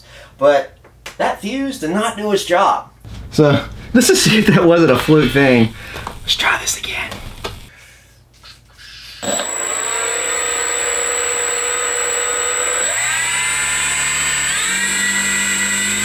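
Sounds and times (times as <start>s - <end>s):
high whine: 3.1s - 7.7s
electric motor and propeller running: 6.0s - 7.7s, 9.2s - 16.0s.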